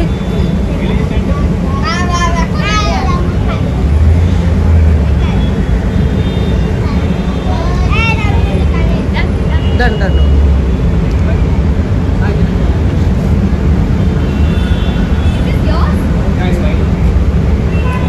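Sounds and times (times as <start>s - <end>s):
traffic rumble: 0.0s - 18.0s.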